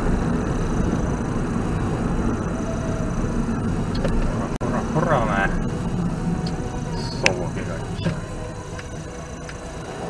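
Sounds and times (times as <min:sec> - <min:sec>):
vehicle road and engine rumble: 0:00.0 - 0:10.0.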